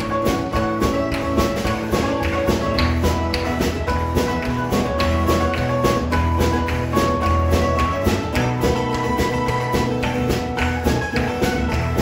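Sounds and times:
steady percussive beat: 0:00.0 - 0:12.0
worship band music: 0:00.0 - 0:12.0.

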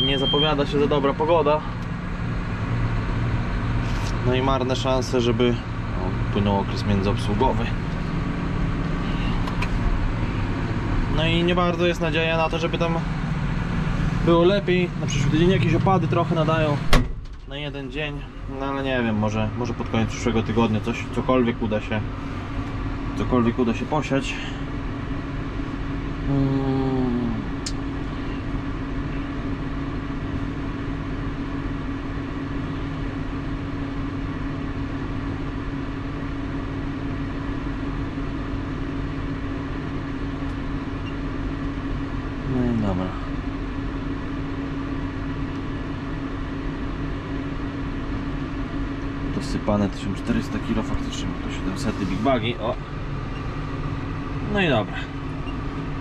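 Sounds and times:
tractor diesel engine idling: 0:00.0 - 0:26.3, 0:26.9 - 0:56.0.

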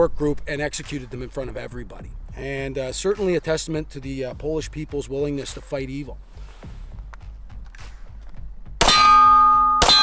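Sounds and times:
metallic ringing: 0:08.8 - 0:10.0.

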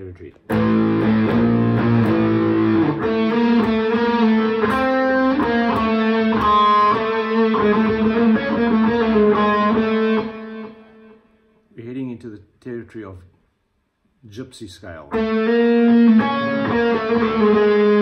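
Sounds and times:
distorted electric guitar scale: 0:00.5 - 0:10.9, 0:15.2 - 0:18.0.

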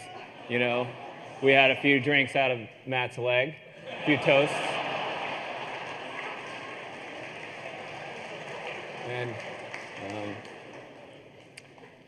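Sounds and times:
audience laughing: 0:00.0 - 0:01.8, 0:03.7 - 0:09.9
audience clapping: 0:04.8 - 0:11.9.

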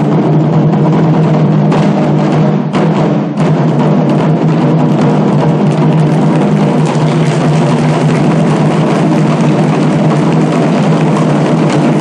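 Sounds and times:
taiko drums rolling: 0:00.0 - 0:12.0.

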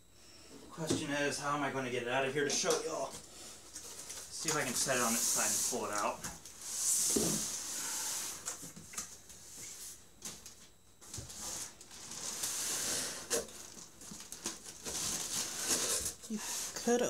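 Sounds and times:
cardboard box rustling and scraping: 0:11.2 - 0:17.0.

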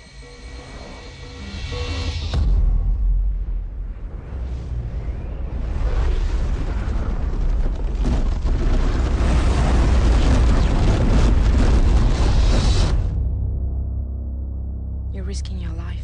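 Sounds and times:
heavy rumble: 0:01.4 - 0:16.0
explosions: 0:02.4 - 0:13.4.

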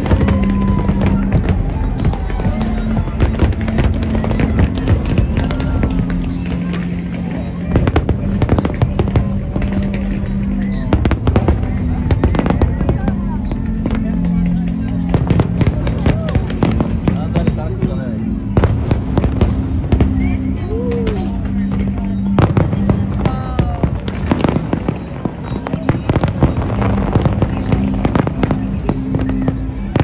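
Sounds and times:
fireworks bursting with sharp bangs: 0:00.0 - 0:30.0.

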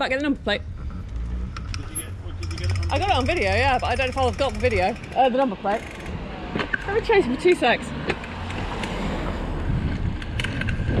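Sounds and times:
wind buffeting microphone: 0:00.0 - 0:05.2, 0:07.8 - 0:11.0
tyres rumbling on rough tarmac: 0:00.0 - 0:11.0.

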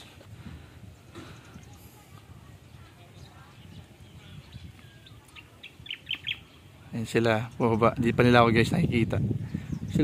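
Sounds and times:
bird chirping: 0:02.7 - 0:08.1.

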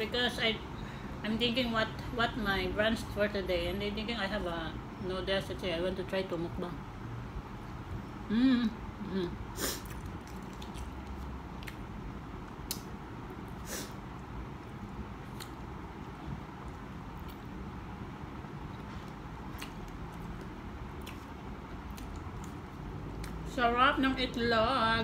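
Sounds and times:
steady room hiss: 0:00.0 - 0:25.0
person chewing: 0:09.7 - 0:17.6, 0:18.6 - 0:23.4.

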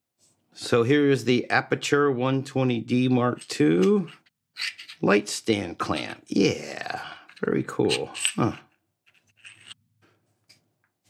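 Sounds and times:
metal clamp scraping: 0:03.4 - 0:05.1, 0:09.1 - 0:09.8.

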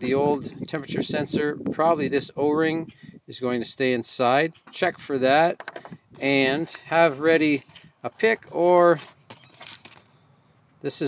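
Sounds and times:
crumpled foil crinkling: 0:08.7 - 0:10.1.

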